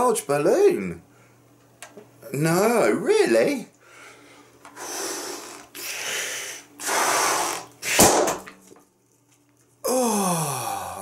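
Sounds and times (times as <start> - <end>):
person blowing up balloon: 4.8 - 8.3
balloon bursting with loud pop: 6.8 - 8.6.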